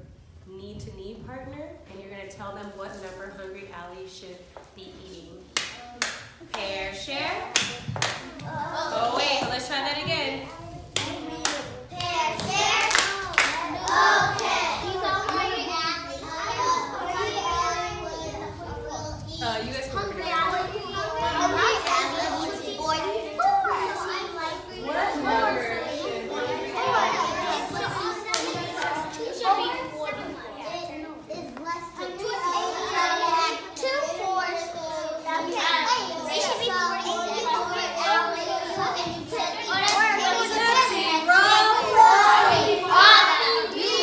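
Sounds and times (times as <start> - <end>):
children talking: 1.6 - 44.0.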